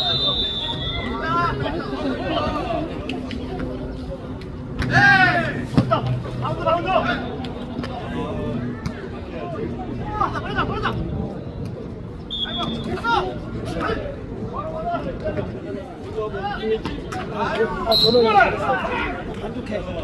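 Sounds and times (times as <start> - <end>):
players shouting: 0.0 - 3.5, 4.8 - 11.4, 16.3 - 20.0
background chatter: 0.0 - 20.0.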